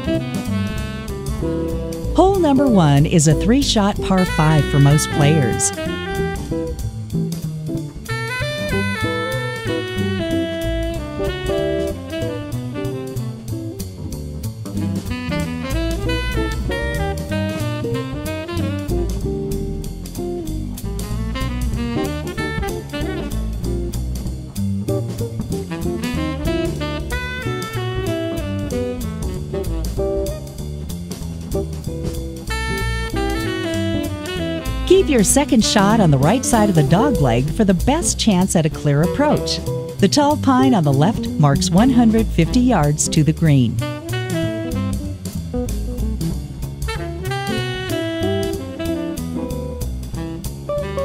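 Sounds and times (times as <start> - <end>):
jazz background music: 0.0 - 51.0.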